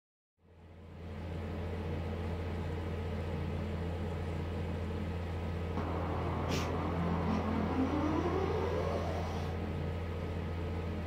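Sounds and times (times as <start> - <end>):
low hum: 2.2 - 11.0.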